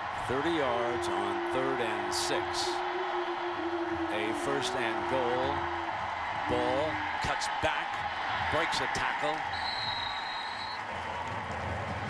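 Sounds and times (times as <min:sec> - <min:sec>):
stadium crowd roaring: 0:00.0 - 0:12.0
referee's whistle: 0:09.5 - 0:10.8.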